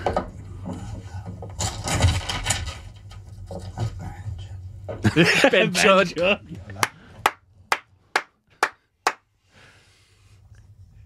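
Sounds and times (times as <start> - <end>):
person clapping hands: 6.8 - 9.2.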